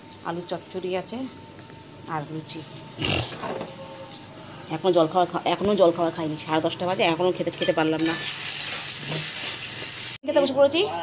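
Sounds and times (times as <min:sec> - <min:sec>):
potatoes sizzling in hot oil: 0:00.0 - 0:10.2.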